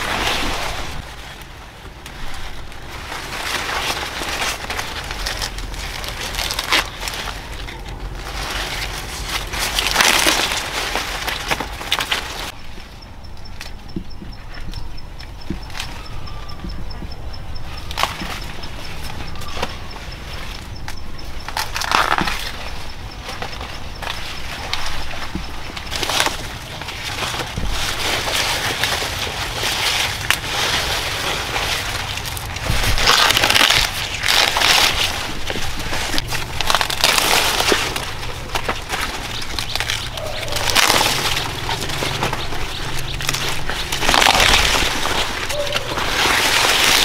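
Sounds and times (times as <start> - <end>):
corn ears snapping off stalks: 0.0 - 12.6, 20.6 - 47.0
corn leaves rustling: 0.0 - 47.0.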